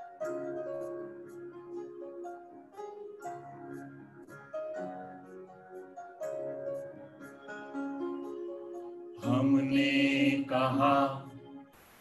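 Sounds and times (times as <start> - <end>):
soft instrumental notes: 0.0 - 11.7
man and woman singing: 9.2 - 11.4.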